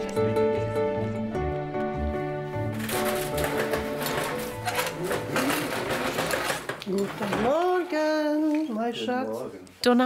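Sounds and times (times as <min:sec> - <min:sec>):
roller shutter slats rattling: 0:02.7 - 0:07.8
woman speaking: 0:09.8 - 0:10.0.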